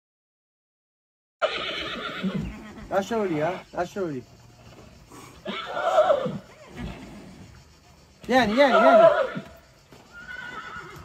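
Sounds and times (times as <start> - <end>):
horse whinnying: 1.4 - 3.7, 5.1 - 7.5, 8.4 - 11.0.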